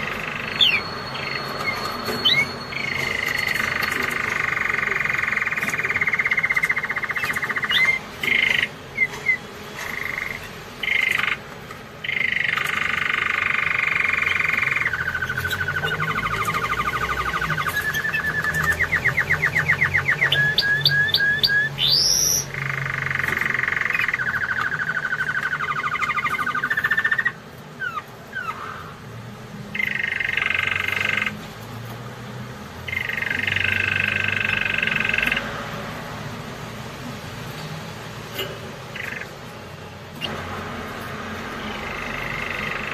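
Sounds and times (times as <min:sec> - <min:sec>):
canary singing: 0:00.0 - 0:42.9.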